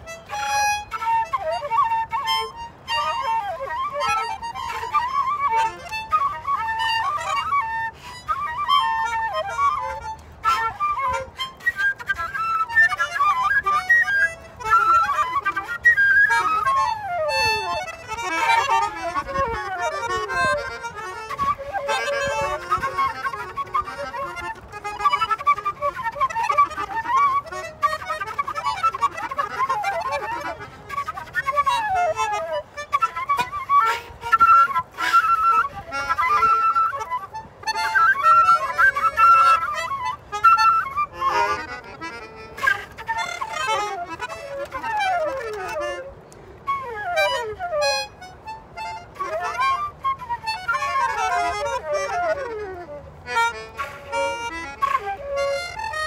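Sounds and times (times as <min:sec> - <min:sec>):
flute: 0:00.0 - 0:56.0
melodica: 0:00.0 - 0:56.0.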